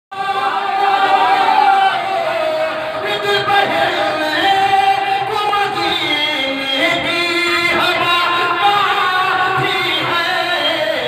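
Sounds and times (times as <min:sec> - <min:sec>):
man singing into a microphone: 0:00.1 - 0:11.0.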